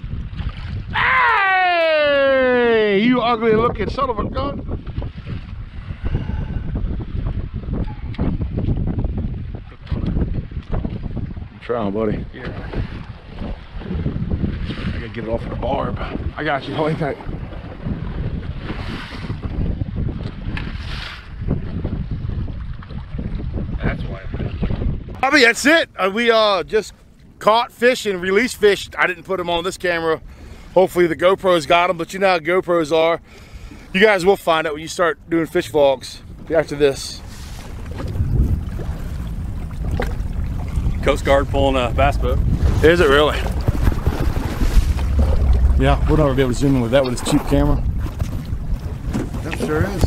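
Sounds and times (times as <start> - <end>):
wind buffeting microphone: 0.0 - 50.0
waves washing against boat hull: 3.0 - 50.0.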